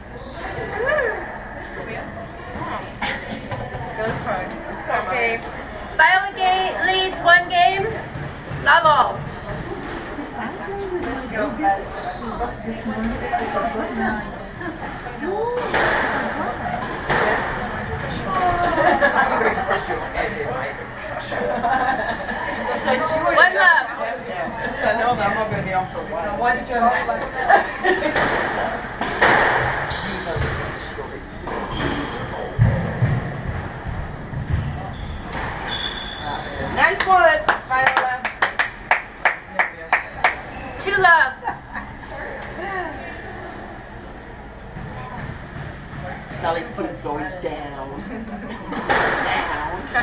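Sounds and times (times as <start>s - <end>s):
squash ball hitting racquets and walls: 15.5s - 18.6s, 28.1s - 30.8s, 31.4s - 37.1s, 48.8s - 50.0s
squash ball hits: 15.6s - 18.5s, 28.1s - 30.7s
sneakers squeaking on hardwood floor: 31.3s - 36.8s.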